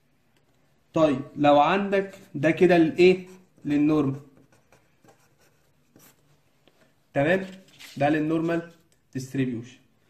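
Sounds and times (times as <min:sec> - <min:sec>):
pen scratching on paper: 0:02.1 - 0:06.3.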